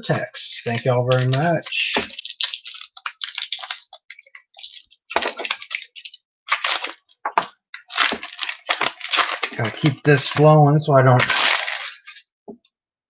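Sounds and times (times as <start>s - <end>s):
card pack wrappers crinkling and tearing: 0.5s - 12.3s.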